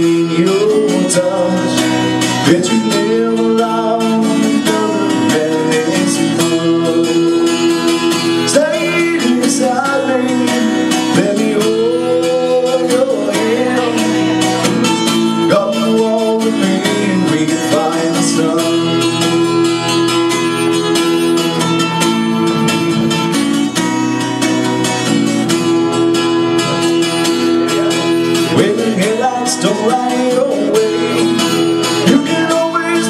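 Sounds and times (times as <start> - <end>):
man singing: 0.0 - 23.8, 26.6 - 33.0
acoustic guitar strumming: 0.0 - 33.0.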